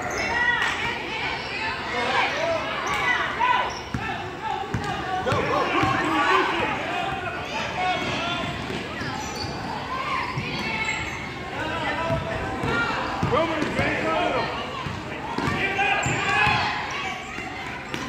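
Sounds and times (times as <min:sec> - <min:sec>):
people shouting and chattering: 0:00.0 - 0:18.0
basketball bouncing on gym floor: 0:03.9 - 0:06.1, 0:12.0 - 0:13.9, 0:14.8 - 0:16.7.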